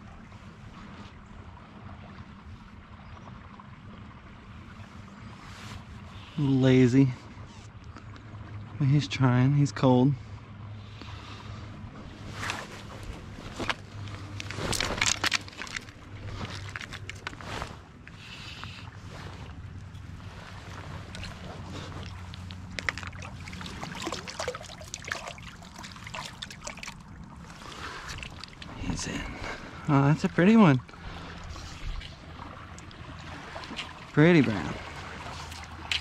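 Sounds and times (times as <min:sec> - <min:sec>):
water splashing and sloshing: 0:00.0 - 0:36.0
gear handling knocks and rustles: 0:12.4 - 0:17.8, 0:21.1 - 0:24.2.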